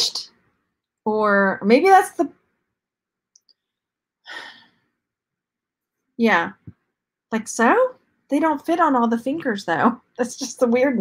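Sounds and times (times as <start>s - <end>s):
woman sighing: 4.3s - 4.7s.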